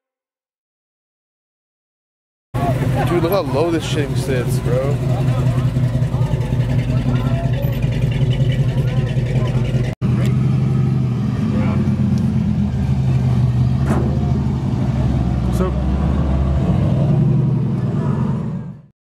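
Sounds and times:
car engine idling: 0:02.6 - 0:16.4.

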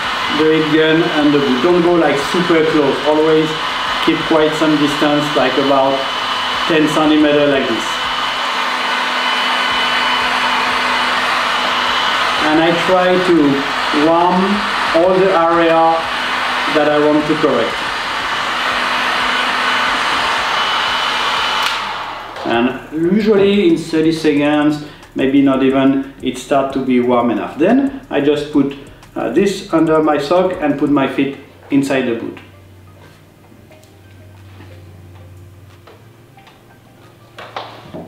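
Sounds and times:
heat gun blowing air: 0:00.0 - 0:31.0.

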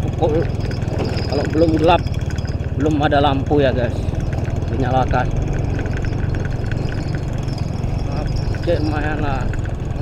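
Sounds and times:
faint rattle: 0:00.0 - 0:10.0
motorcycle engine running: 0:00.0 - 0:10.0.

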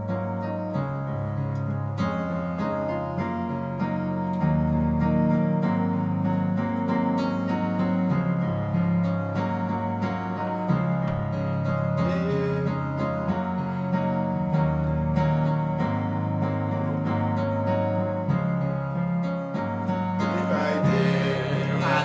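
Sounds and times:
guitar chords: 0:00.0 - 0:22.0
keyboard chords: 0:00.0 - 0:22.0
bass line: 0:01.2 - 0:22.0.

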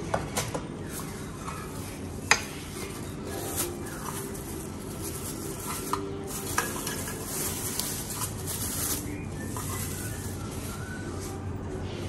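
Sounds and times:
plastic wrapping crinkling: 0:00.8 - 0:12.0.

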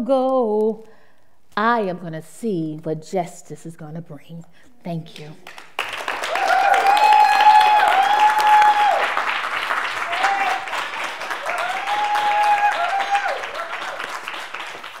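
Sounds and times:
audience applauding: 0:05.4 - 0:15.0
high cheers: 0:06.0 - 0:14.8.

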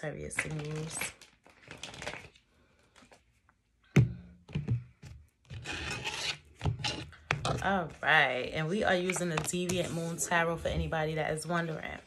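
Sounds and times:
cards being shuffled: 0:00.4 - 0:02.4.

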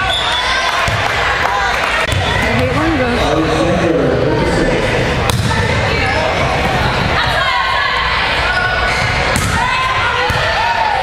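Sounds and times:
chatter of voices: 0:01.8 - 0:11.0.

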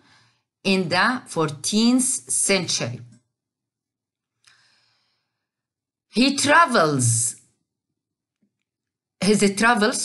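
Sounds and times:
faint breath: 0:00.0 - 0:00.5, 0:04.4 - 0:05.6.

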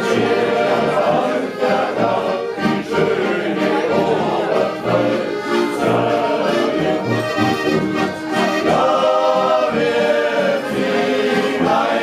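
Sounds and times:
men singing in chorus: 0:00.0 - 0:07.1, 0:08.6 - 0:12.0
button accordions: 0:00.0 - 0:12.0.

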